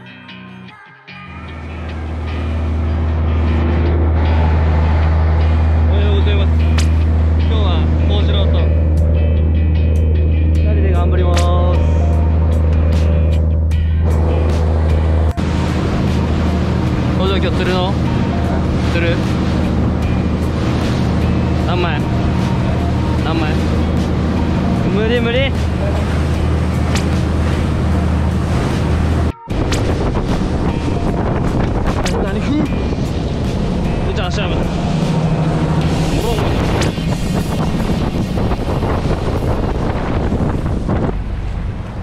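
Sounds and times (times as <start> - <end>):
boat engine running: 1.2 - 42.0
wind and water rushing: 1.5 - 9.6, 11.0 - 42.0.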